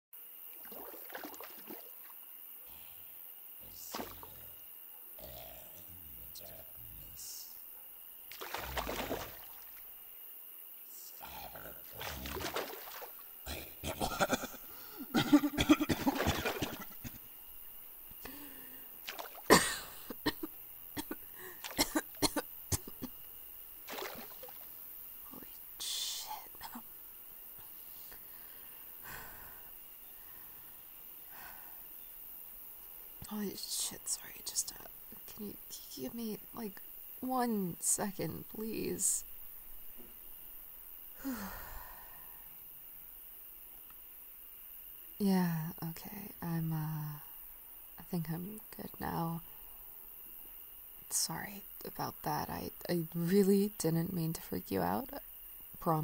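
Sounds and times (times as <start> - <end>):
night insects chirring: 0.2 - 56.0
water splashing: 0.5 - 2.2, 3.7 - 4.4, 8.3 - 9.9, 11.8 - 13.4, 15.9 - 17.0, 19.0 - 19.8, 23.8 - 24.9
person making gurgling croaks: 2.7 - 7.4, 8.3 - 9.7, 11.1 - 17.3, 18.2 - 23.1
sharp wet pops: 8.3 - 9.8.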